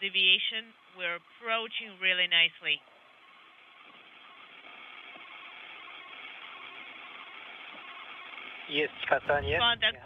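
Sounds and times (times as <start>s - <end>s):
radio channel hiss: 0.0s - 10.0s.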